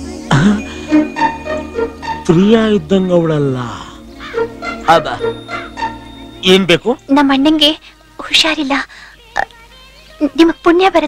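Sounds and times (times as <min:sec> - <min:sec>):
faint background music: 0:00.0 - 0:11.0
person speaking: 0:02.2 - 0:05.7.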